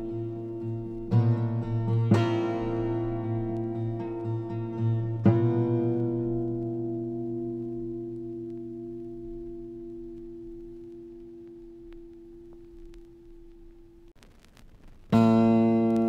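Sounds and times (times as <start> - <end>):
guitar chords ringing: 0.0 - 14.1, 15.1 - 16.0.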